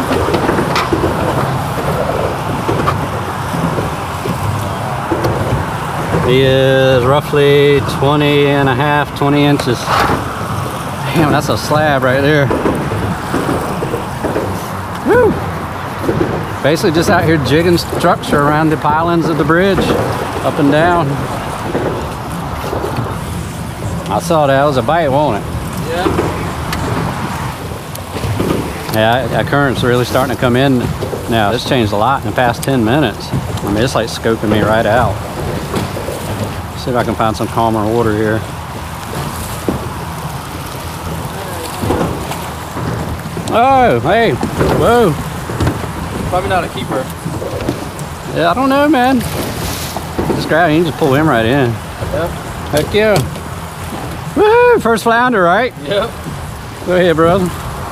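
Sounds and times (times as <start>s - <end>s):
water slapping boat hull: 0.0s - 57.9s
wind rushing over microphone: 0.0s - 57.9s.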